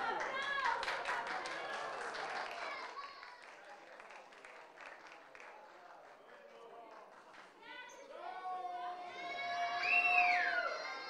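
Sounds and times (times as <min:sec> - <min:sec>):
light clapping: 0:00.2 - 0:07.5.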